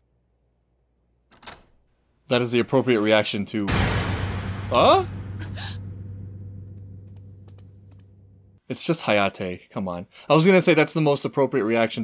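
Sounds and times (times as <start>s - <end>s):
low steady drone: 4.0s - 8.6s.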